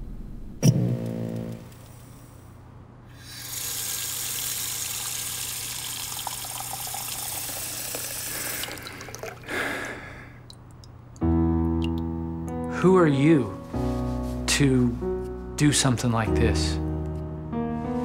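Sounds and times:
faucet running into sink: 3.3s - 9.4s.

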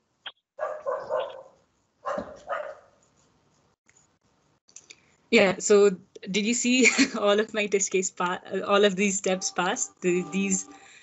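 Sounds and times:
dog barking: 0.6s - 3.0s.

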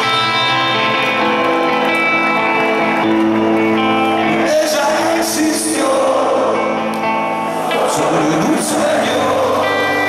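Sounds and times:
electric guitar held notes: 0.0s - 5.4s
live rock band: 0.0s - 10.0s.

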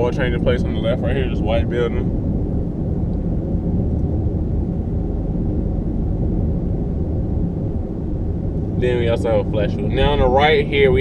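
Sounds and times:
car interior road rumble: 0.0s - 11.0s.

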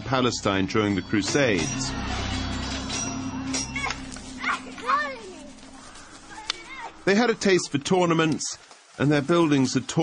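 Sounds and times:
held low music note: 0.5s - 7.9s
children calling and shouting: 1.4s - 7.4s.

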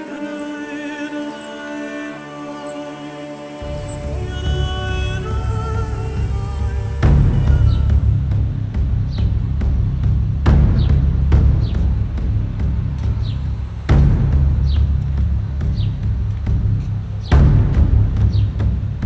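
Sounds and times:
music with heavy bass: 3.6s - 19.0s.

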